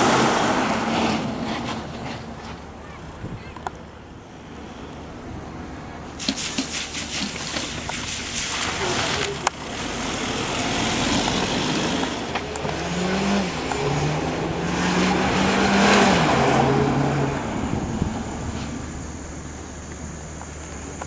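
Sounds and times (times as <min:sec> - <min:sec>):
car engine revving: 0:00.0 - 0:02.3, 0:08.6 - 0:19.8.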